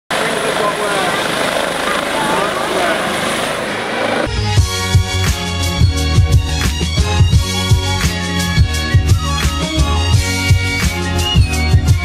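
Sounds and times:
people talking: 0:00.1 - 0:04.3
helicopter rotor and turbine: 0:00.1 - 0:12.0.

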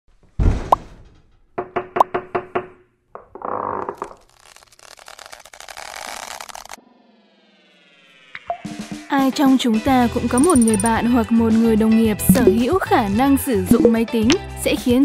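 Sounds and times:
cartoon thump: 0:00.4 - 0:01.2
falling glide of tones: 0:06.8 - 0:08.5.

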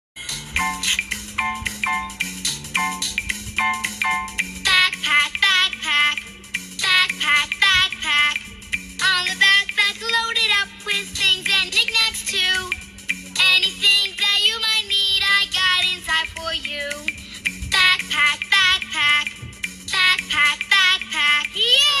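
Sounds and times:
bouncy backing track: 0:00.2 - 0:22.0
childlike singing: 0:04.7 - 0:06.2, 0:06.8 - 0:08.4, 0:09.0 - 0:12.8, 0:13.4 - 0:17.1, 0:17.7 - 0:19.3, 0:19.9 - 0:22.0.

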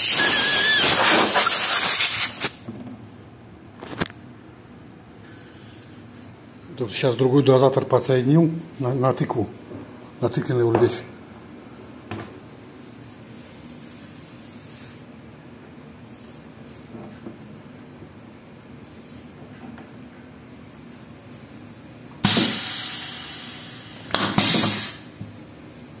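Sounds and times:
compressed air hiss: 0:00.0 - 0:02.6, 0:12.9 - 0:15.1, 0:20.4 - 0:26.0.

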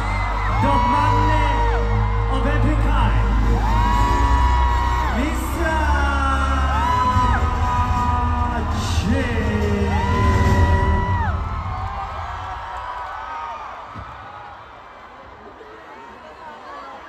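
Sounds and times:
concert music with heavy bass beat: 0:00.0 - 0:12.4
crowd screaming and whooping: 0:00.0 - 0:17.0.

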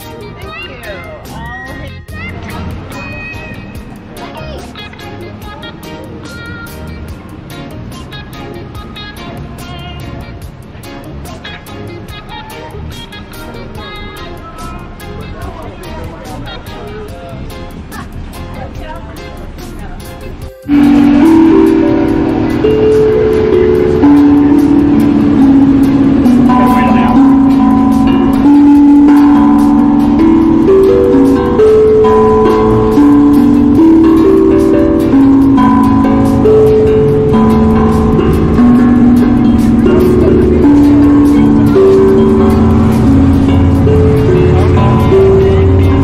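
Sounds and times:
steel tongue drum notes: 0:20.6 - 0:46.0.

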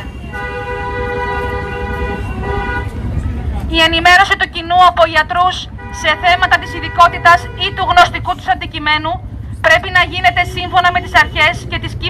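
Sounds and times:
vehicle horn blast: 0:00.0 - 0:03.1
low traffic rumble: 0:00.0 - 0:12.0.

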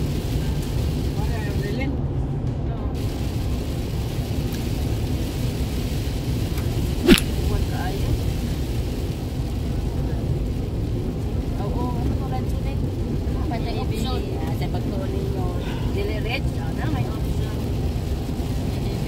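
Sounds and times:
car road and engine rumble: 0:00.0 - 0:19.0.

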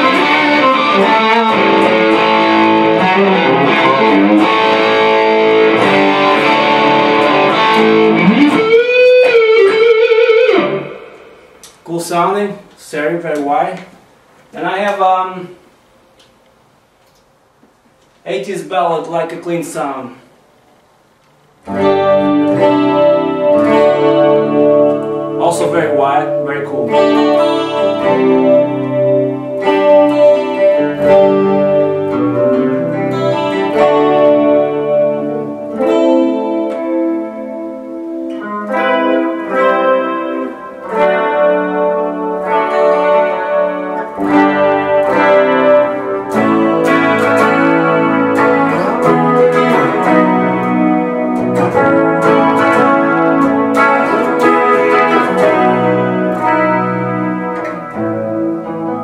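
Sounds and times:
clean electric guitar chords: 0:00.0 - 0:11.9, 0:21.6 - 0:59.0.

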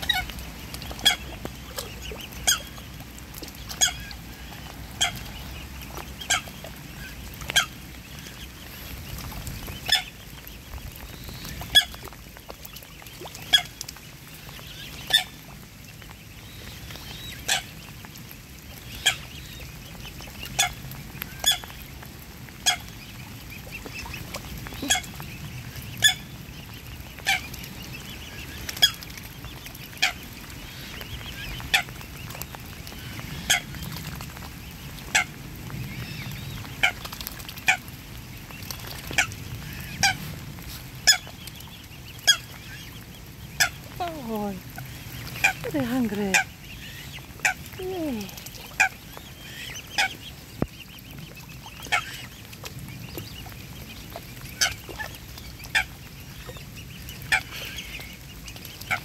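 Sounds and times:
swans feeding sharp sounds: 0:00.0 - 0:59.0.

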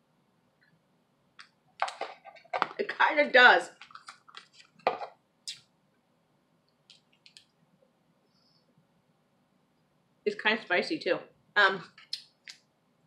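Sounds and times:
breath: 0:08.2 - 0:08.7.

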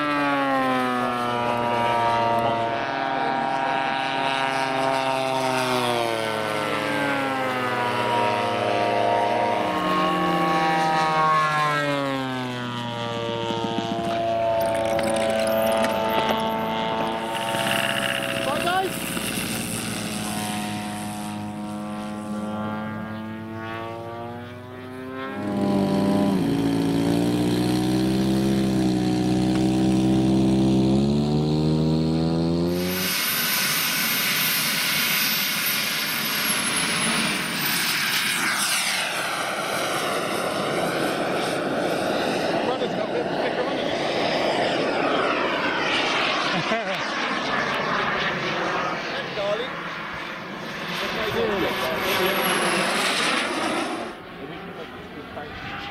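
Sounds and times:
jet flying past: 0:00.0 - 0:26.6, 0:32.0 - 0:55.9
model jet turbine whine: 0:00.0 - 0:55.9
model plane piston engines: 0:00.0 - 0:55.9.

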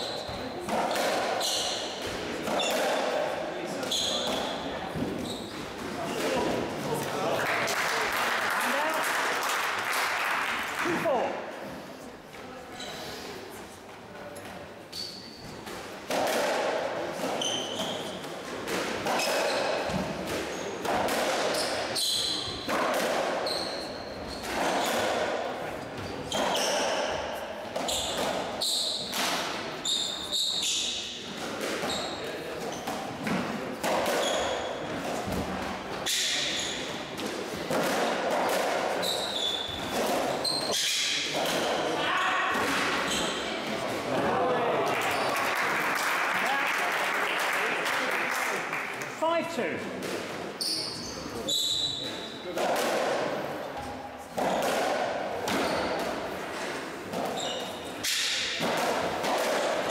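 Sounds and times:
shoes squeaking on wooden floor: 0:01.4 - 0:03.0, 0:03.8 - 0:06.4, 0:17.2 - 0:18.2, 0:26.0 - 0:27.2, 0:27.8 - 0:29.1, 0:31.8 - 0:33.1, 0:39.0 - 0:41.0, 0:43.0 - 0:43.6, 0:50.6 - 0:52.3, 0:56.6 - 0:58.0.

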